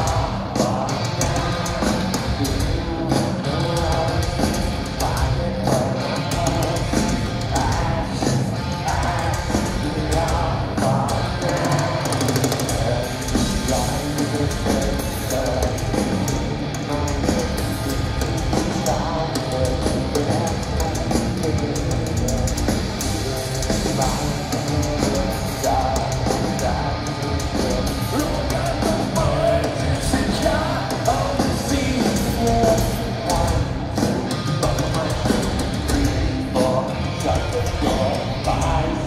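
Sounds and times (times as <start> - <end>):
drum kit: 0.0 - 39.0
heavy distorted guitars: 0.0 - 39.0
singer's voice: 0.0 - 39.0.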